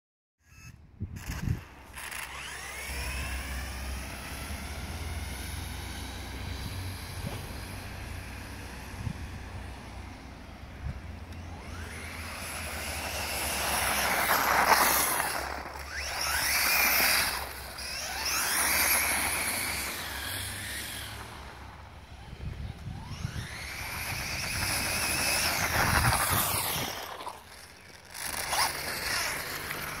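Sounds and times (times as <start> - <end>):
electric motor whining: 0.4 - 30.0.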